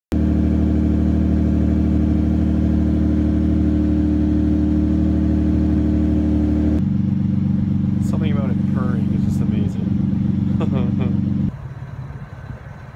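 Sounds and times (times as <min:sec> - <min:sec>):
car engine idling: 0:00.1 - 0:12.9.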